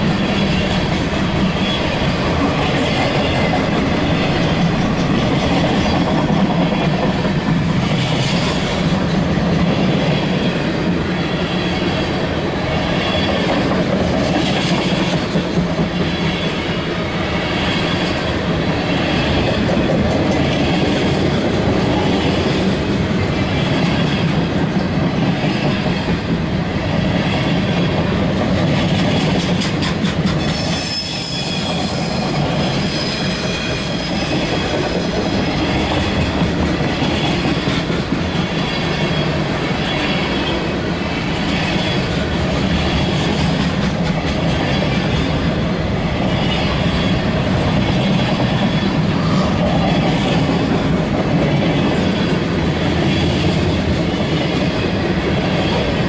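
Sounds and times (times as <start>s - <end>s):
train wheels rumbling on rail: 0.0s - 56.0s
wheel clickety-clack: 23.5s - 31.0s, 41.4s - 45.4s
high wheel squeal: 30.4s - 35.4s.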